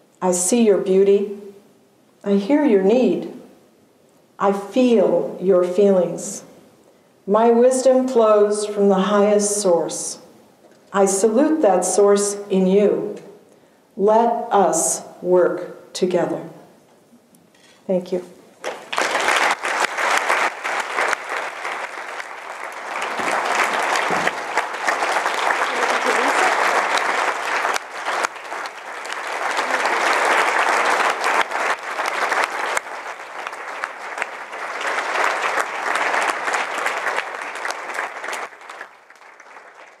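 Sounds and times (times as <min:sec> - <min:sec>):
audience applauding: 0:18.6 - 0:40.0.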